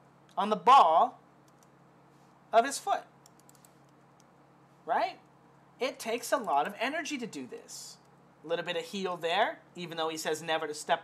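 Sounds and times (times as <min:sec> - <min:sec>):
low steady hum: 0:00.0 - 0:11.0
computer clicks: 0:01.4 - 0:01.8, 0:03.2 - 0:04.3
man speaking: 0:04.8 - 0:05.2, 0:05.8 - 0:11.0.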